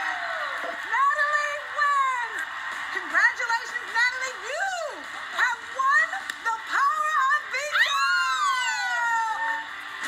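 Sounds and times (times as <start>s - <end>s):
women screaming in celebration: 6.7s - 9.8s.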